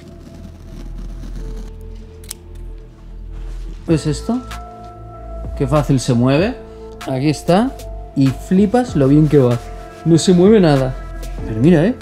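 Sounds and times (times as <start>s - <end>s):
scissors cutting rubber: 0.0s - 2.7s
soft background music: 0.0s - 12.0s.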